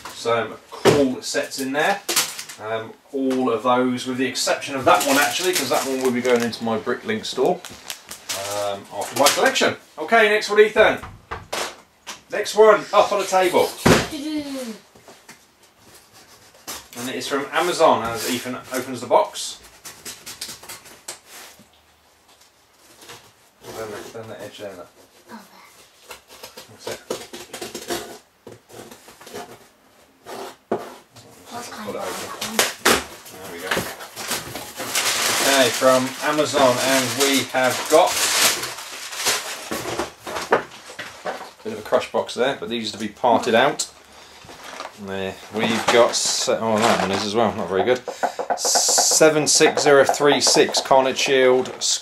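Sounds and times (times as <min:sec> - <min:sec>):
cardboard box rustling: 0:44.5 - 0:52.0.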